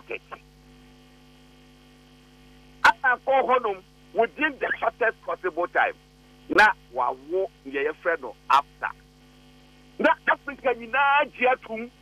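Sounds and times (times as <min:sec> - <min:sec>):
electrical hum on telephone line: 0:00.0 - 0:12.0
man's voice: 0:10.0 - 0:11.9.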